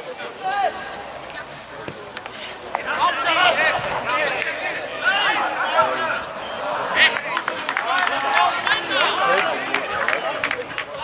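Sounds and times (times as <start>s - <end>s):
people shouting: 2.8s - 11.0s.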